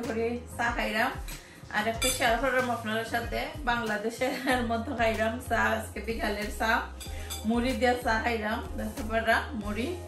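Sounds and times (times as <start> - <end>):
metal spoon clinking against bowl: 2.0 - 2.4, 7.0 - 7.6.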